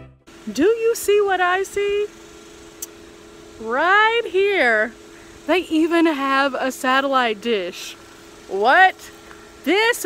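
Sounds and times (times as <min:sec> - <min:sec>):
faint steady hum: 0:00.3 - 0:10.0.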